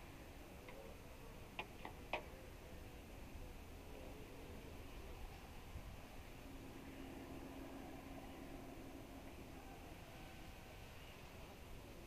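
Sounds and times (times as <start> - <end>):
quiet outdoor background: 0.0 - 12.0.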